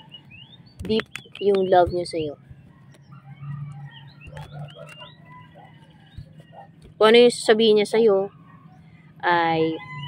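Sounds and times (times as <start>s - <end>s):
bird chirps and clucks: 0.0s - 7.0s
low steady hum: 0.0s - 10.0s.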